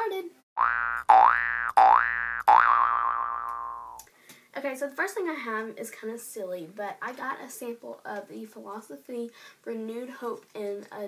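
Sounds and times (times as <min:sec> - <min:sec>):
electronic boing effect: 0:00.6 - 0:04.0.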